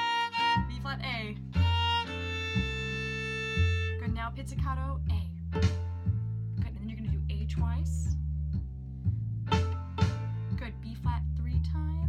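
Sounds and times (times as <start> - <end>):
violin plucked pizzicato: 0.0 - 4.8, 9.5 - 11.2
backing track with bass line: 0.0 - 12.0.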